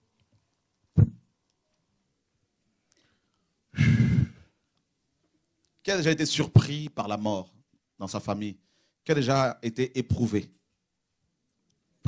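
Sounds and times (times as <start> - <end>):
man sighing: 3.8 - 4.5.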